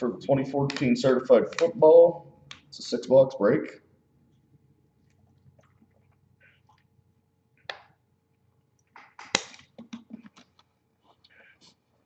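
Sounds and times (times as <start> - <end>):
steady low hum: 0.0 - 8.9.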